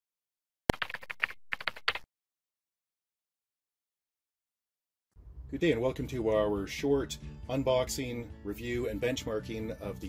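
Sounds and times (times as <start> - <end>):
keyboard typing: 0.7 - 2.1.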